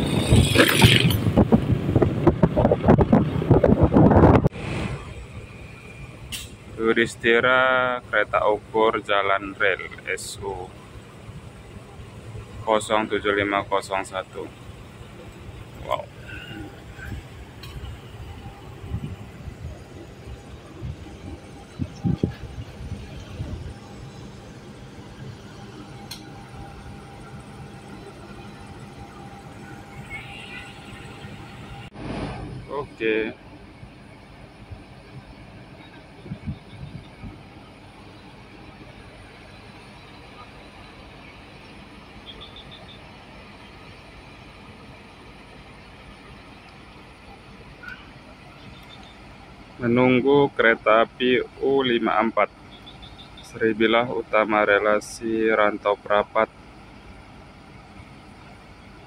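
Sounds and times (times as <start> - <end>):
wind buffeting microphone: 0.0 - 5.5, 16.8 - 24.0, 34.6 - 37.6
diesel locomotive idling: 0.0 - 59.0
vehicle rumble: 0.0 - 59.0
faint steady whine: 4.9 - 59.0.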